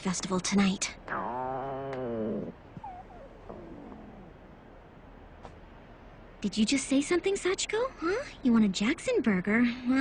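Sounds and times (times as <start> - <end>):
stomach growling: 1.1 - 4.6.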